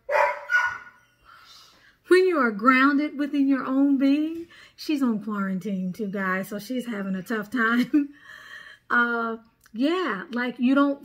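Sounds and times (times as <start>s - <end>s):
dog barking: 0.0s - 1.0s.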